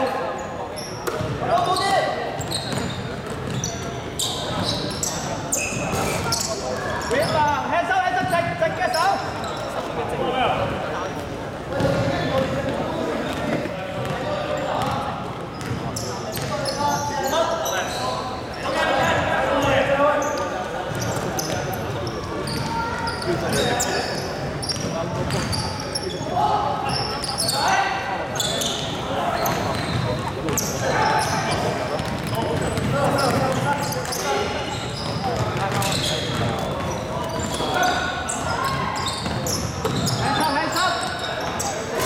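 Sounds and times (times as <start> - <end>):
sneakers squeaking: 0.0 - 42.0.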